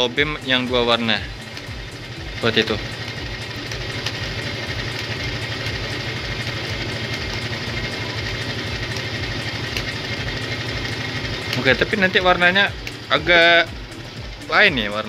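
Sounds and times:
motorcycle engine idling: 0:00.0 - 0:15.0.

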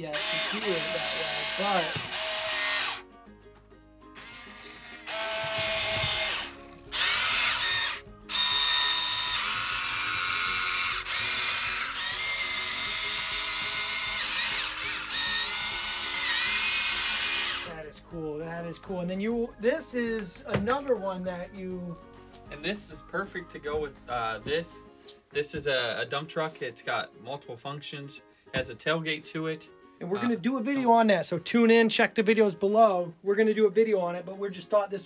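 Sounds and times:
small electric motors whining: 0:00.0 - 0:03.0, 0:04.2 - 0:17.8.

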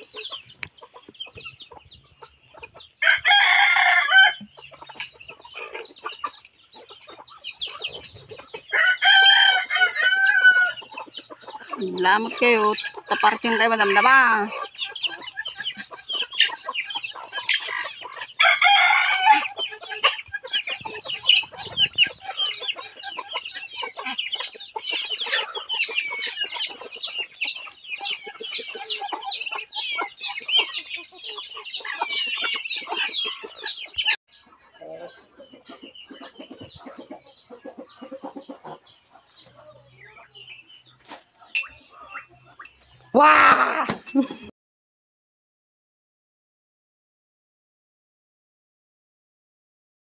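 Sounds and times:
chickens clucking: 0:00.0 - 0:44.5
rooster crowing: 0:03.0 - 0:04.4, 0:08.7 - 0:10.8, 0:18.4 - 0:19.5.

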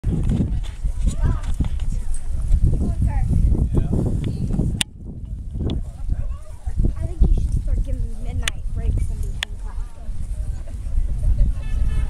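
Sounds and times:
people talking indistinctly: 0:00.4 - 0:12.0.

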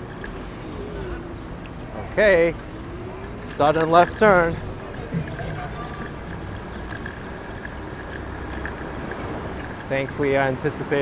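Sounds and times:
road rumble: 0:00.0 - 0:11.0
street traffic: 0:00.0 - 0:11.0
wind: 0:00.0 - 0:11.0.

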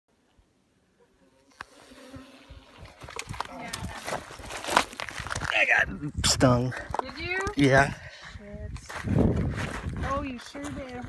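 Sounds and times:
honeybees buzzing: 0:01.0 - 0:03.8.

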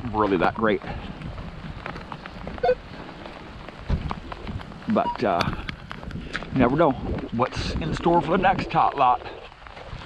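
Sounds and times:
footsteps crunching through mulch: 0:00.0 - 0:10.0
patter of wet snow and rain: 0:00.0 - 0:10.0.

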